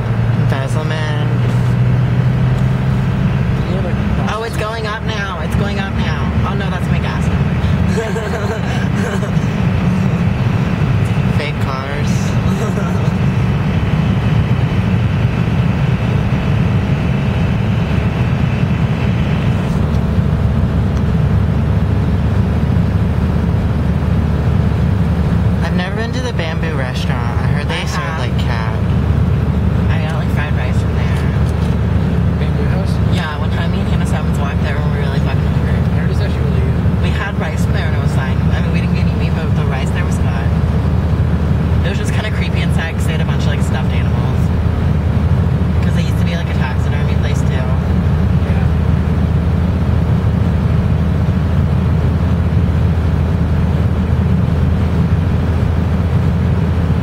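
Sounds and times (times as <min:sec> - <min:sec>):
muffled voices: 0:00.0 - 0:20.2, 0:25.4 - 0:44.7, 0:45.6 - 0:49.2
car cabin road and engine rumble: 0:00.0 - 0:57.0.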